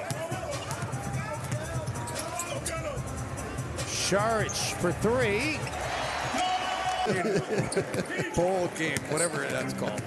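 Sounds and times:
shoe squeaks: 1.5s - 2.8s, 9.0s - 9.8s.

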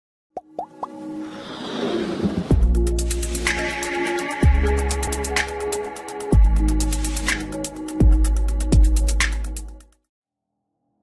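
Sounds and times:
cartoon-like plops: 0.4s - 1.0s.

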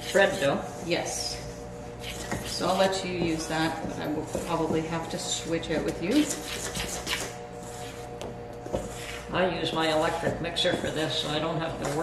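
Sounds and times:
spatula scraping metal bowl: 2.0s - 8.1s, 8.8s - 12.0s.

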